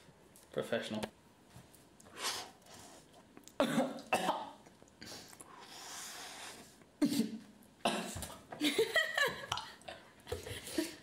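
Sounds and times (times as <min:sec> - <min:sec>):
breathy sniff: 0:02.1 - 0:03.1, 0:05.0 - 0:07.3
man coughing: 0:03.6 - 0:04.6, 0:07.0 - 0:08.3.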